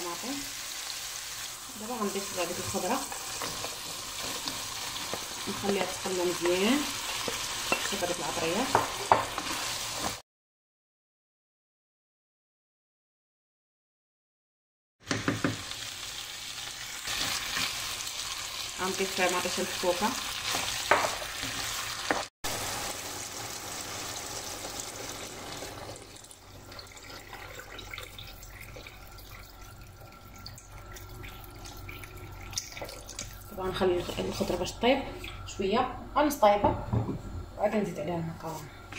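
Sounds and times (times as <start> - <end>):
vegetables sizzling in oil: 0.0 - 10.2, 15.2 - 27.2
wooden spoon stirring: 2.0 - 10.2
spoon knocking against pan: 8.6 - 9.4
water pouring into pan: 23.1 - 33.4.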